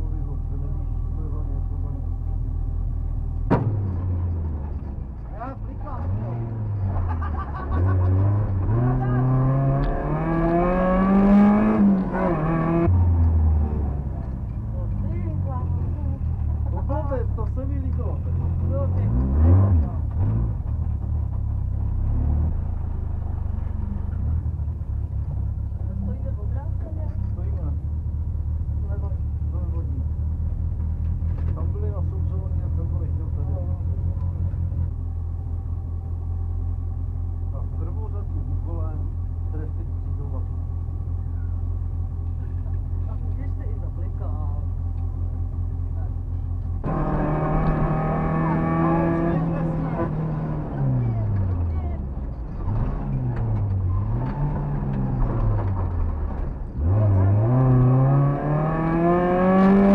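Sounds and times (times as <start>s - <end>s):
car engine revving and idling: 0.0s - 59.9s.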